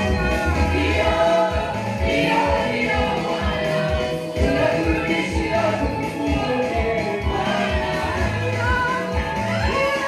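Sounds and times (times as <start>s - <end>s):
women singing gospel music: 0.0s - 10.0s.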